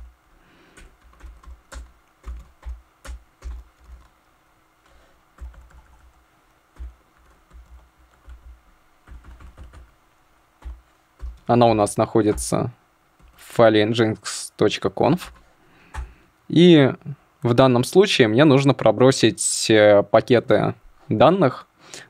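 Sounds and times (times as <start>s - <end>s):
typing on computer keyboard: 0.7s - 4.1s, 5.4s - 6.2s, 6.8s - 9.9s.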